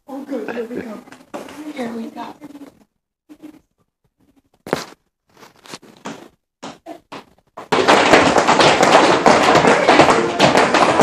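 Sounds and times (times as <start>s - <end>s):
tap shoes tapping on floor: 6.0s - 11.0s.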